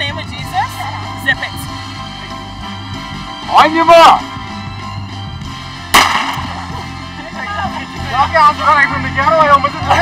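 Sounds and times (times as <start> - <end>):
background music: 0.0 - 10.0
starting pistol crack: 5.9 - 6.7.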